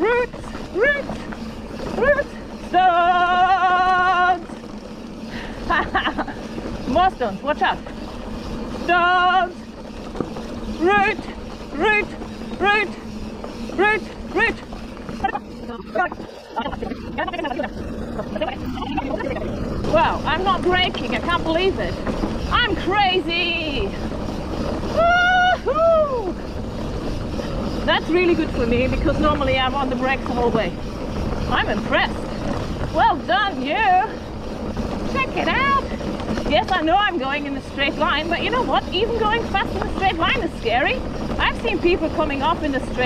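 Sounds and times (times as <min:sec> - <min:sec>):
bike tyre rumble on dirt: 0:00.0 - 0:43.0.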